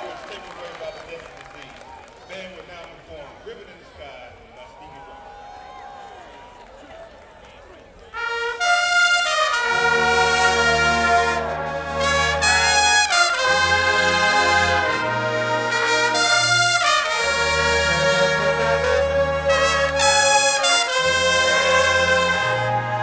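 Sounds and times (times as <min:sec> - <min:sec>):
background noise: 0:00.0 - 0:23.0
marching band brass chords: 0:08.1 - 0:23.0.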